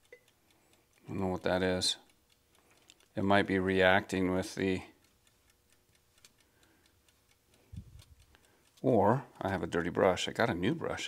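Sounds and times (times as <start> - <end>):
egg timer ticking: 0.0 - 11.0.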